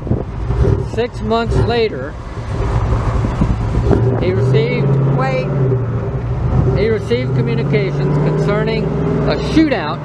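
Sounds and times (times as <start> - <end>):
pickup truck driving past: 0.0 - 10.0.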